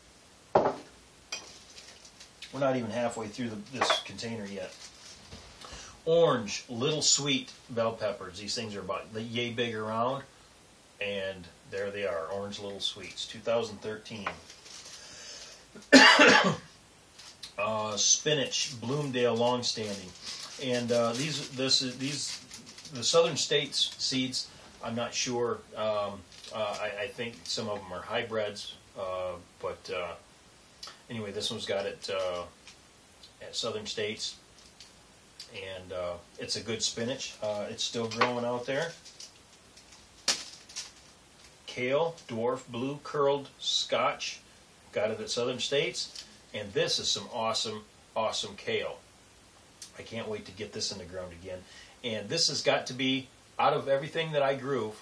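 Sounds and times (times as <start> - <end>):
man coughing: 15.9 - 16.7
seed packet handled in metal tin: 17.3 - 24.4.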